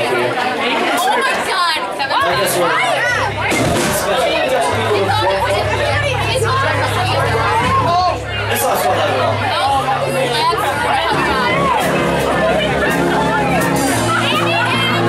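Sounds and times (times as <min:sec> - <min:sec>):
loud crowd chatter: 0:00.0 - 0:15.0
live rock band playing: 0:03.0 - 0:15.0.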